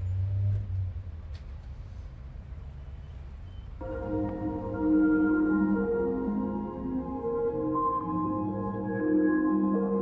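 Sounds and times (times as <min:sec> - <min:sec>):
low vehicle rumble: 0:00.0 - 0:10.0
music: 0:03.8 - 0:10.0.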